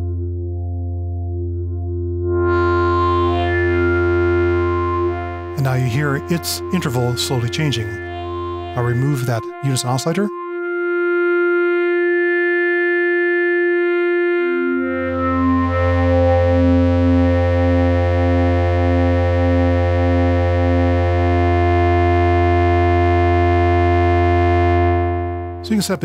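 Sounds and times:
deep low synth note: 0.0 - 25.7
pulsing middle tone: 0.0 - 26.0
synthesizer drone: 0.0 - 26.0.

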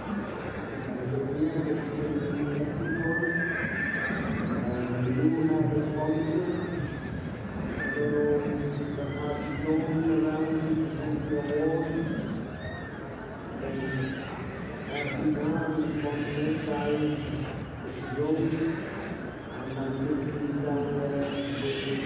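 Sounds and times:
people's voices: 0.0 - 22.0
horses whinnying: 2.3 - 19.7, 21.1 - 22.0.

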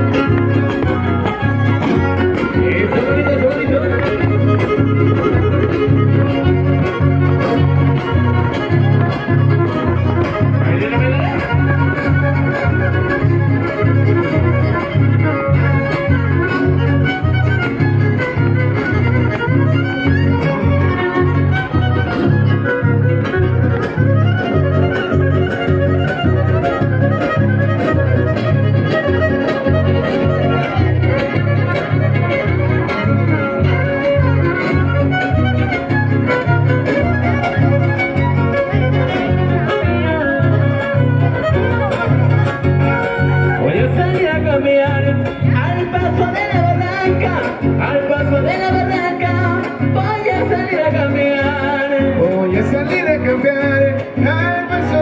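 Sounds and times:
pulsing bass beat: 0.0 - 51.7
band playing fiddle-led music: 0.0 - 55.0.

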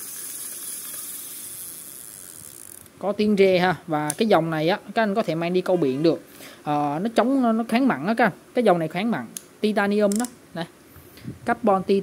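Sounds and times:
fishing reel whirring: 0.0 - 2.9.

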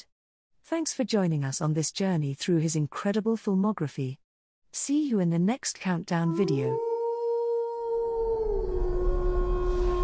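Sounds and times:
siren-like drone: 8.4 - 10.0.

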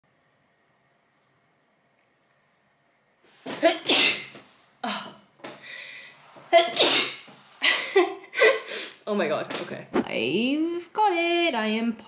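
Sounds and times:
woman sneezing: 3.5 - 5.2, 6.5 - 9.0
woman laughing: 7.6 - 9.0.

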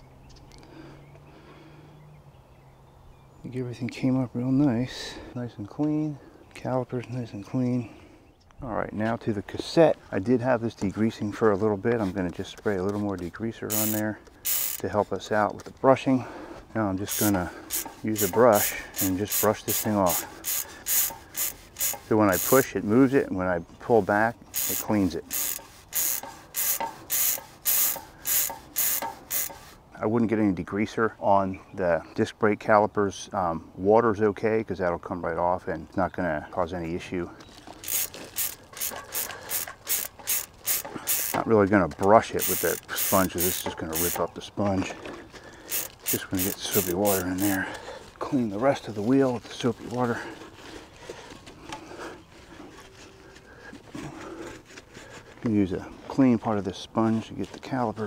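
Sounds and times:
bristle brush scrubbing metal: 17.0 - 29.8, 42.2 - 44.2, 45.7 - 47.6.

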